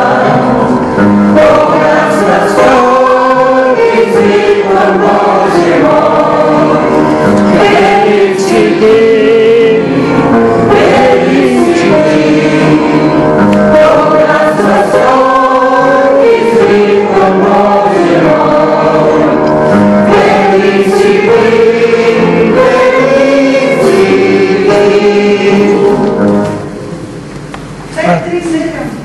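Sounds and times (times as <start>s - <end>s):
congregation singing a hymn: 0.0s - 27.3s.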